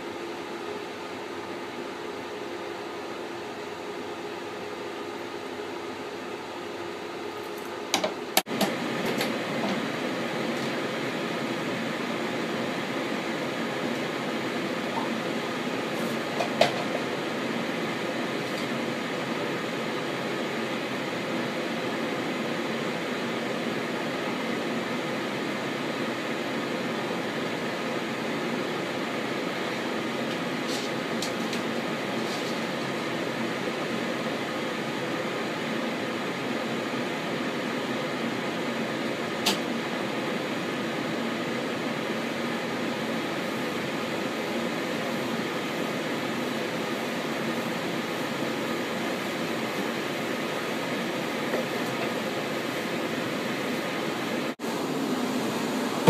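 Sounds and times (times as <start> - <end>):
projector machinery hum: 0.0 - 56.0.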